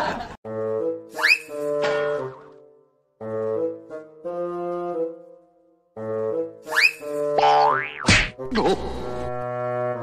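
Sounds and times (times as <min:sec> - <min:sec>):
brass-led background music: 0:00.4 - 0:10.0.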